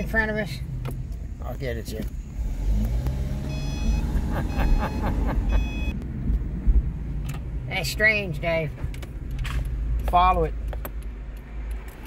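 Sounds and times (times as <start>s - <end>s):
car cabin engine and road rumble: 0.0s - 12.0s
high electronic beep: 3.4s - 6.0s.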